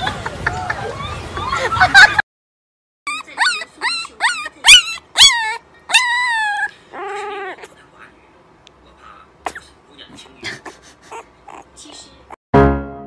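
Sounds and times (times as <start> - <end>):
puppy howling: 3.1 - 7.7
puppy whimpering and yipping: 3.1 - 7.7, 11.1 - 11.8.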